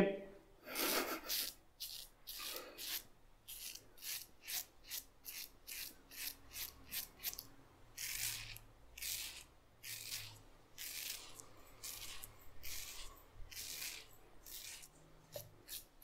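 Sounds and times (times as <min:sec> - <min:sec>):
razor scraping stubble: 0:00.8 - 0:16.0.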